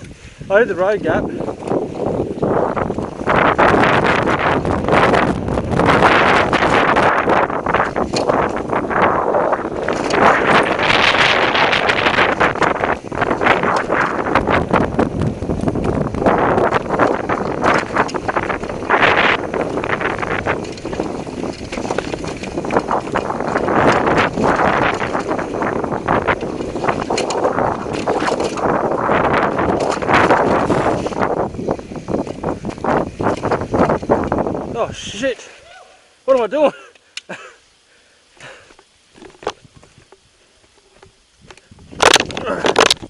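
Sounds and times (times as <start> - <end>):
bike chain and frame rattling: 0.0 - 35.2, 38.4 - 43.0
wind buffeting microphone: 0.0 - 35.4, 38.4 - 43.0
bike tyres rolling on dirt: 0.0 - 43.0.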